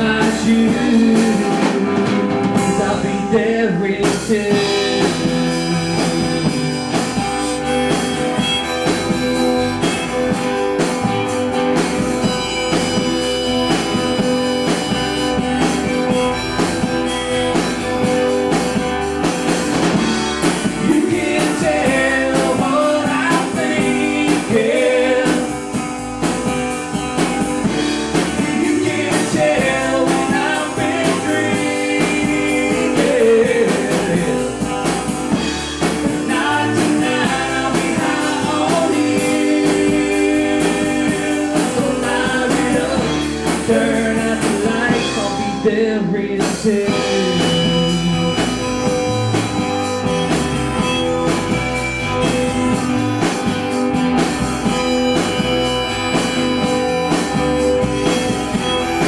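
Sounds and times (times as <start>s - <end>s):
drum kit: 0.0s - 59.0s
guitars strumming chords: 0.0s - 59.0s.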